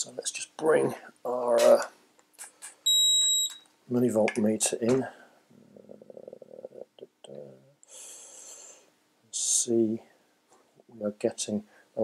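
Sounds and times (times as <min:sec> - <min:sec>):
high-pitched electronic beep: 0:02.9 - 0:03.6.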